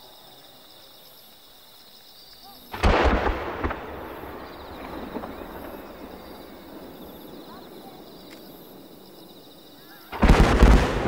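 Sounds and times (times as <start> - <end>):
firework mortar boom: 2.7 - 9.2, 10.1 - 11.0.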